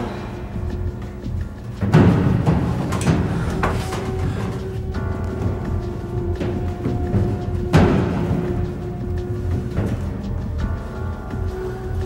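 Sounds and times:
heavy drum hits: 0.0s - 10.8s
low sustained held tones: 0.0s - 12.0s.

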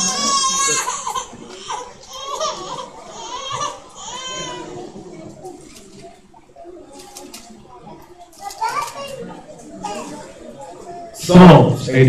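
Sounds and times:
quiet background voices: 0.0s - 12.0s.

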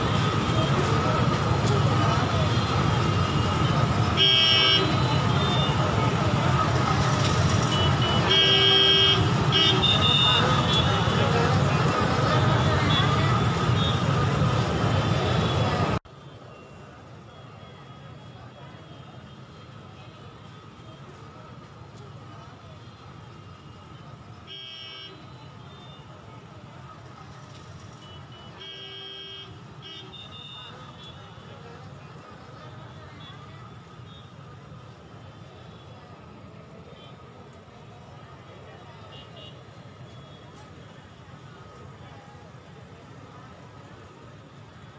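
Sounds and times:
crowd voices: 0.0s - 44.9s
motorbike engines: 0.0s - 44.9s.

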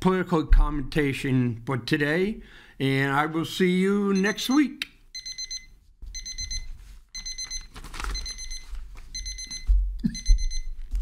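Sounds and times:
electronic alarm beeping: 4.2s - 10.8s.

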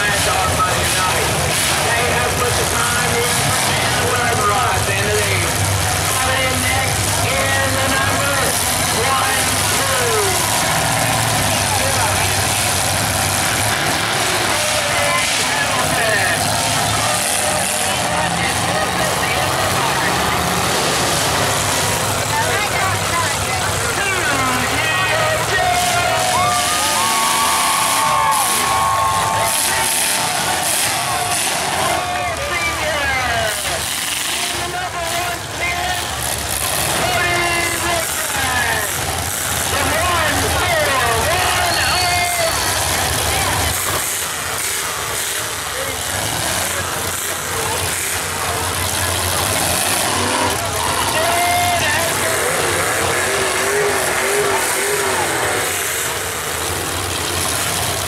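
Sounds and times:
car engines revving: 0.0s - 58.0s
crowd voices and shouting: 0.0s - 58.0s.

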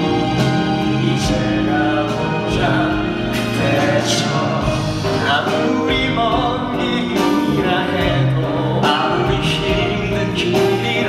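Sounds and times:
instrumental accompaniment: 0.0s - 11.0s
man singing: 0.0s - 11.0s.

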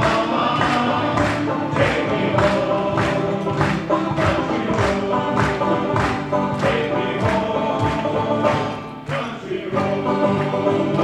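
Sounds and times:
acoustic guitars: 0.0s - 11.0s
hand claps: 0.0s - 11.0s
men's group singing: 0.0s - 11.0s.

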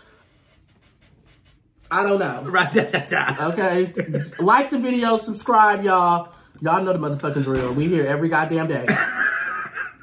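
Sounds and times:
person speaking: 1.8s - 8.9s.

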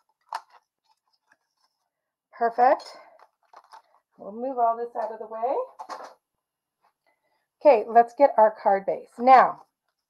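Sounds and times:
cardstock rustling: 0.0s - 2.0s, 3.1s - 4.0s.

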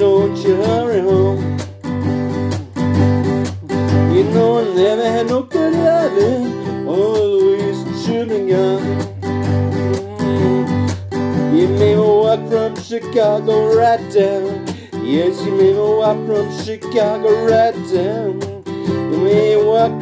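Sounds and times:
acoustic guitar strummed: 0.0s - 20.0s
wordless vocal moan: 9.8s - 10.9s.

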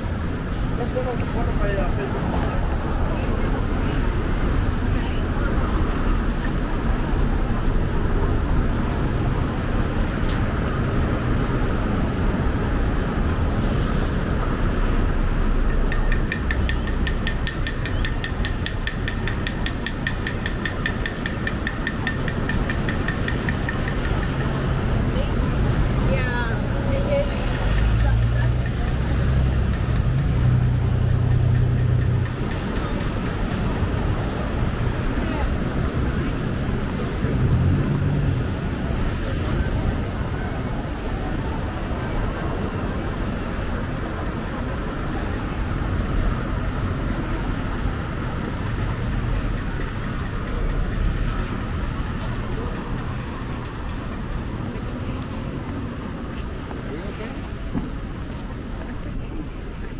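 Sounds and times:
passersby voices: 0.0s - 59.9s
traffic rumble: 0.0s - 59.9s.

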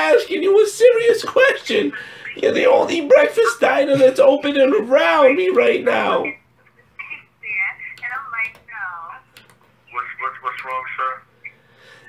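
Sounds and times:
person talking over telephone: 0.0s - 9.3s, 9.9s - 11.6s.

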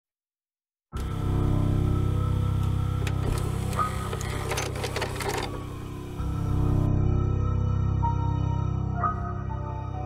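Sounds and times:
dark ambient music drone: 1.0s - 10.0s
vcr loading cassette clatter: 3.0s - 6.2s.

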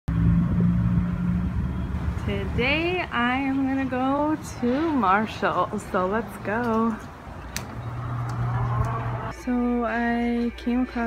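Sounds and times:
engine rumbling: 0.1s - 11.0s.

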